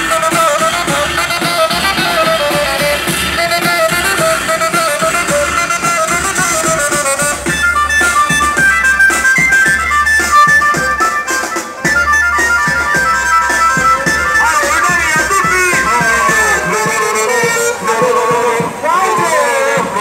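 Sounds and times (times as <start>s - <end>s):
amplified band music on loudspeakers: 0.0s - 20.0s.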